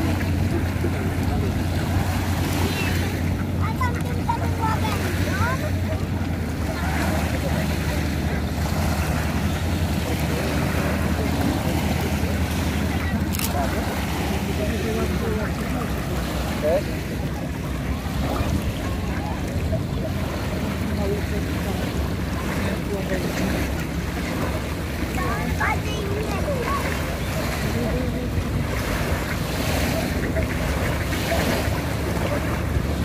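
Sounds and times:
faint voices: 0.0s - 33.0s
small waves lapping at shore: 0.0s - 33.0s.

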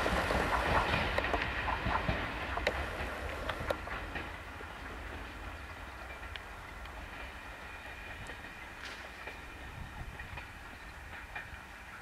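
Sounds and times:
sharp clicks of train wheels: 0.0s - 12.0s
train wheels rumbling on rails: 0.0s - 12.0s.

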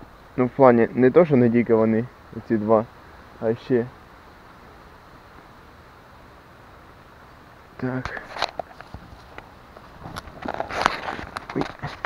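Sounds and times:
branches rustling and snapping: 7.8s - 12.0s.

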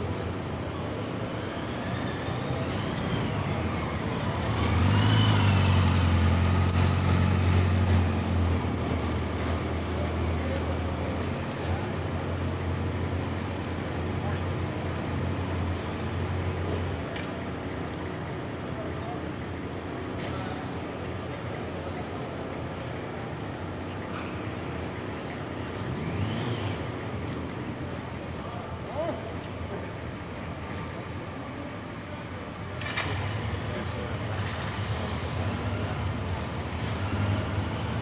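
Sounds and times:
street noise: 0.0s - 38.0s.

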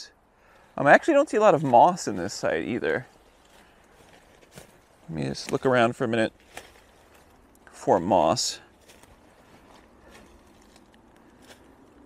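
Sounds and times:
light crackles: 0.4s - 12.0s
footsteps on forest floor: 0.5s - 12.0s.

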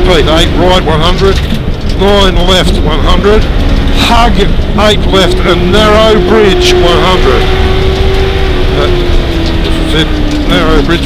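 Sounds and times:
car engine running: 0.0s - 11.0s
low road rumble: 0.0s - 11.0s.

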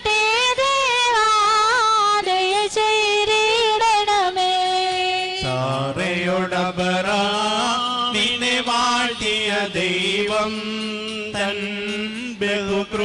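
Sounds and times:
men chanting in unison: 5.4s - 13.0s.

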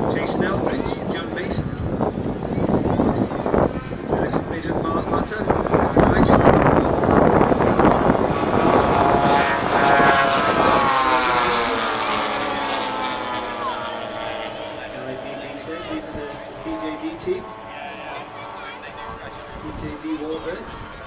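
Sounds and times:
model aircraft engines flying past: 0.0s - 21.0s.

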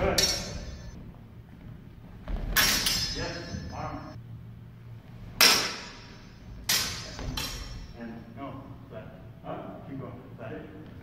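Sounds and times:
sword blades clashing: 0.0s - 1.0s, 2.4s - 4.1s, 5.4s - 8.0s.

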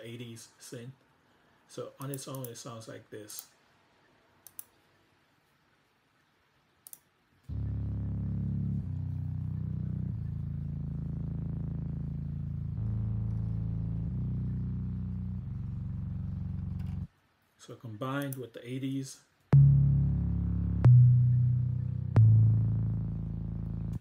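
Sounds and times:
sustained low organ chords: 7.5s - 17.1s, 19.5s - 24.0s.

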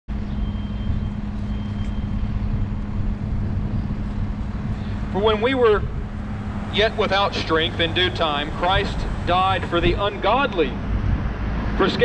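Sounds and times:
faint high whine: 0.1s - 10.9s
constant low hum: 0.1s - 12.0s
low outdoor rumble: 0.1s - 12.0s.

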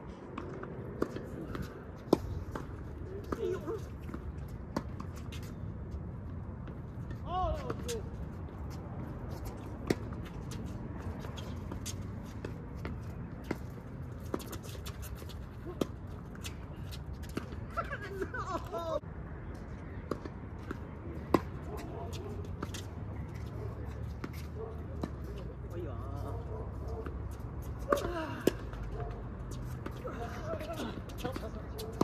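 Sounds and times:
outdoor background noise: 0.0s - 32.0s
tennis balls bouncing on court: 0.2s - 32.0s
tennis balls struck by rackets: 19.9s - 22.9s.

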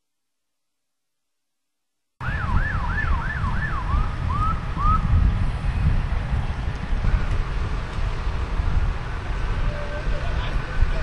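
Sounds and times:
emergency siren yelping: 2.2s - 5.2s.

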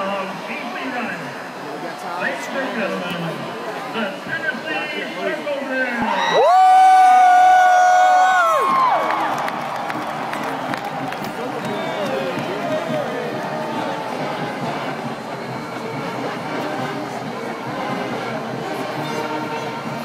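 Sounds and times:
stadium crowd cheering: 1.4s - 20.0s
marching band brass chord: 9.7s - 20.0s.

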